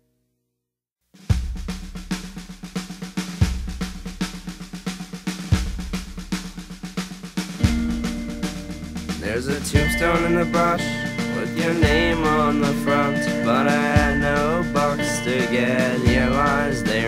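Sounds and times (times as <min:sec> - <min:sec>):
heavy bass-drum hits: 0:01.2 - 0:17.0
pop-punk song with drums: 0:01.3 - 0:17.0.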